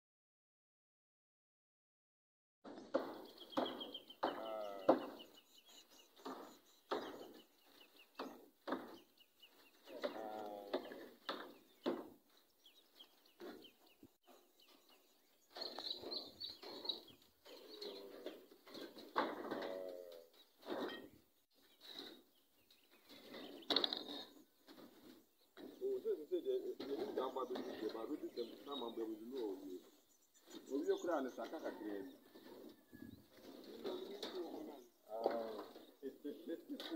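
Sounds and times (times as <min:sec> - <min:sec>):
farm animals calling: 0:03.2 - 0:36.9.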